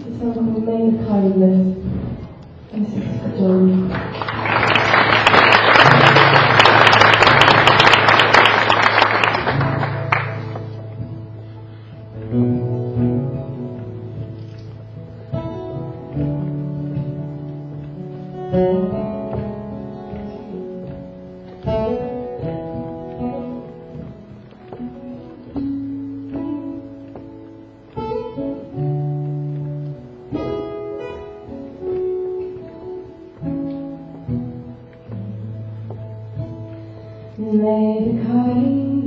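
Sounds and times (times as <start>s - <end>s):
acoustic guitar chords ringing: 5.1s - 38.8s.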